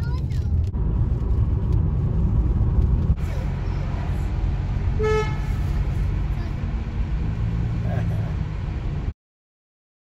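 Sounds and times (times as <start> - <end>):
car road and engine rumble: 0.0 - 9.1
car horn toot: 5.0 - 5.6.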